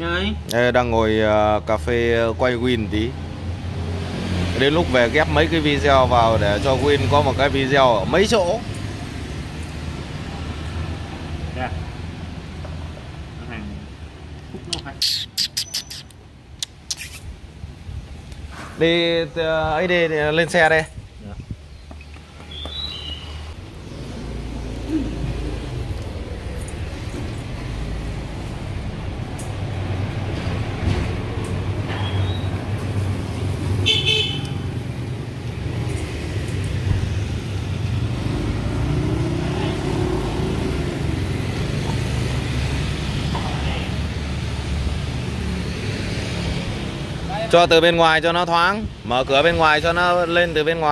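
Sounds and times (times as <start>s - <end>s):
rumble of passing vehicles: 0.0s - 50.9s.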